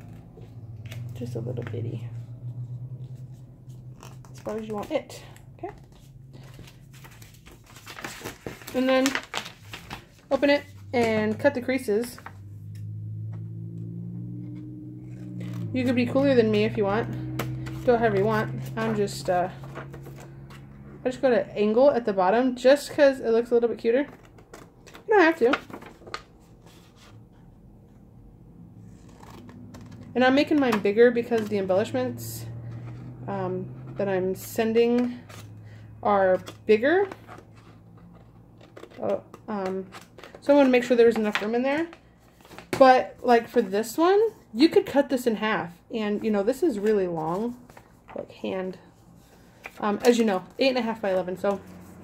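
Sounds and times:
paper rustling and crinkling: 0:05.7 - 0:11.4, 0:24.1 - 0:27.2, 0:36.4 - 0:42.8, 0:46.7 - 0:48.2.

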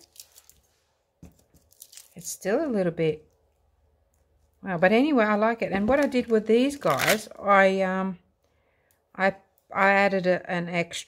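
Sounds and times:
handling noises on work surface: 0:00.0 - 0:02.1.

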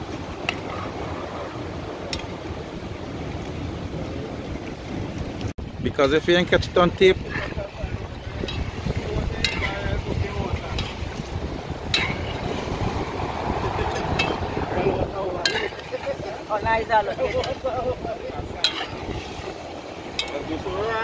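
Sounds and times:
wind rumble on microphone: 0:00.0 - 0:21.0
wood fire burning: 0:00.0 - 0:21.0
metal spoon stirring pot: 0:08.2 - 0:12.7, 0:15.4 - 0:16.3, 0:18.6 - 0:20.5.

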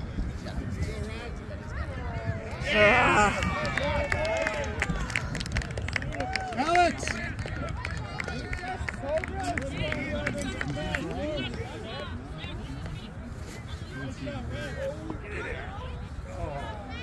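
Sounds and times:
people shouting and calling out: 0:02.1 - 0:04.8.

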